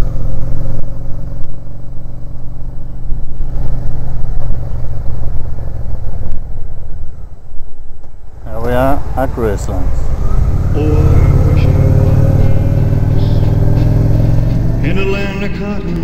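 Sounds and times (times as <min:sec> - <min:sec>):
motorcycle engine running: 0:00.0 - 0:16.0.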